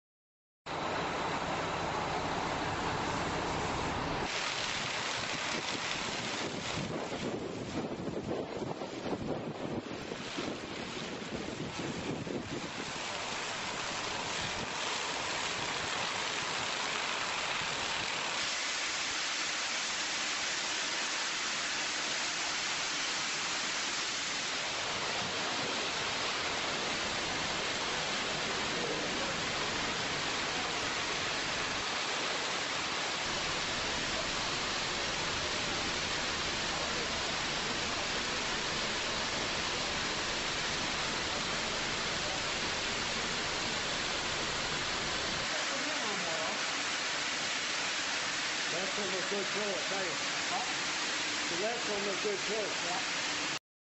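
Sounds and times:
fire hose spraying: 0:00.8 - 0:53.6.

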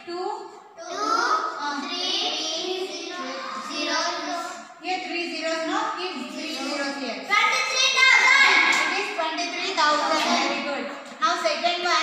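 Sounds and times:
children chanting in unison: 0:00.8 - 0:04.8.

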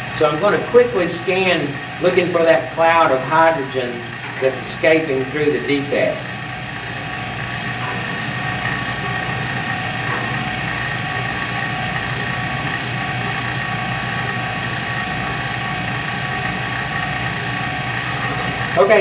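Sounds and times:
high whine: 0:00.0 - 0:19.0
pump motor whirring: 0:00.0 - 0:19.0.

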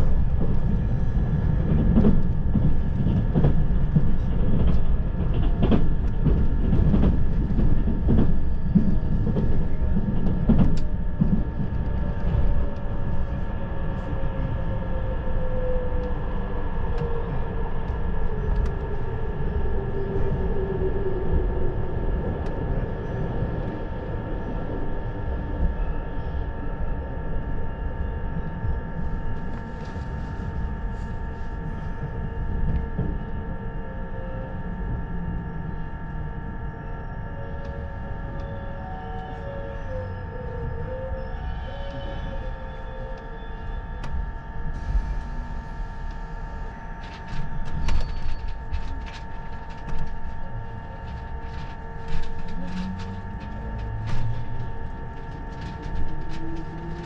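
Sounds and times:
train wheels rumbling on rail: 0:00.0 - 0:57.0.

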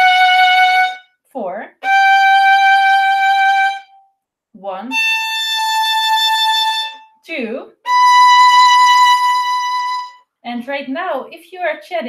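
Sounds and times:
violin bowed note: 0:00.0 - 0:01.1, 0:01.8 - 0:04.0, 0:04.8 - 0:10.3.

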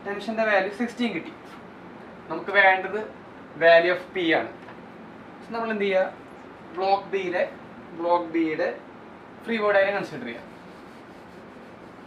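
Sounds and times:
duster scrubbing whiteboard: 0:10.1 - 0:12.0.

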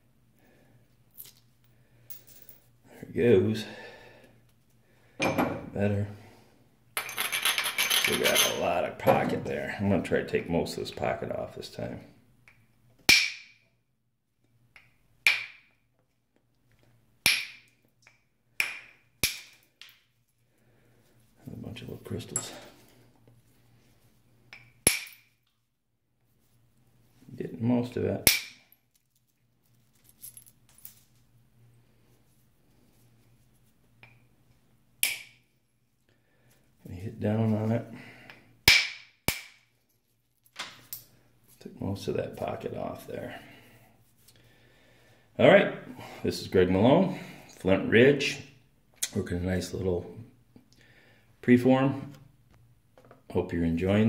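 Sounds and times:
copper billet striking flint: 0:24.5 - 0:25.2, 0:38.6 - 0:39.6.

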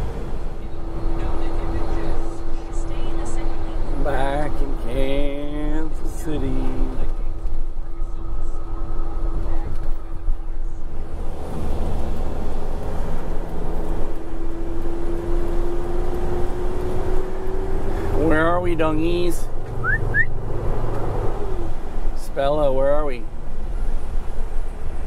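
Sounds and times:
road and engine rumble: 0:00.0 - 0:25.0.

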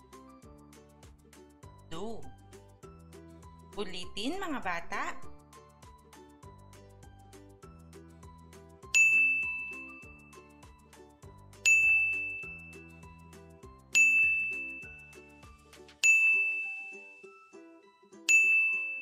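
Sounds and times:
soft background music: 0:00.0 - 0:19.0
ding chime: 0:08.8 - 0:10.6, 0:11.6 - 0:13.3, 0:13.9 - 0:19.0.

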